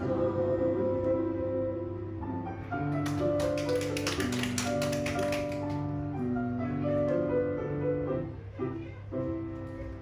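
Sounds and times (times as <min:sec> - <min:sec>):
people clapping: 0:02.9 - 0:05.9.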